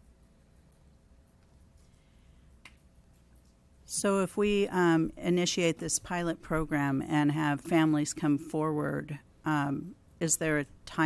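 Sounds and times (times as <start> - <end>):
low hum: 3.9 - 11.0.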